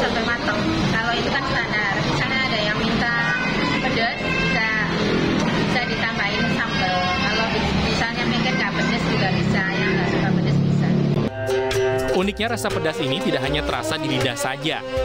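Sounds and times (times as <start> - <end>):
woman speaking: 0.0 - 11.1.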